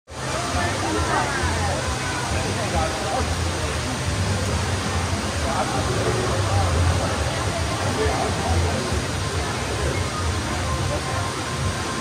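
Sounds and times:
spectators chatting: 0.1s - 12.0s
steady rushing noise: 0.1s - 12.0s.

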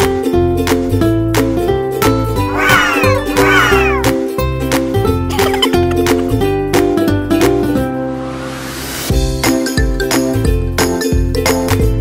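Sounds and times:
plucked ukulele music with beat: 0.0s - 2.5s, 4.2s - 8.0s, 9.4s - 12.0s
high arching cries: 2.4s - 4.1s.

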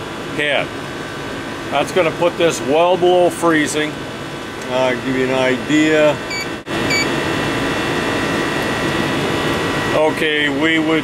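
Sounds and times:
air conditioner unit running: 0.0s - 11.0s
short electronic beeps: 6.3s - 7.1s.

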